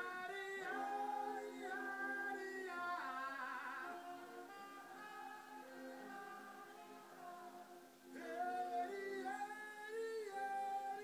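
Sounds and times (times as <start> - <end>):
jazz band sustained notes: 0.0 - 9.4.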